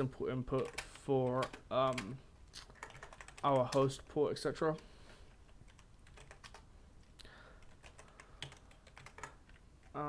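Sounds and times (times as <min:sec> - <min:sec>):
keyboard typing: 0:00.4 - 0:04.1, 0:05.3 - 0:06.7, 0:07.5 - 0:10.0.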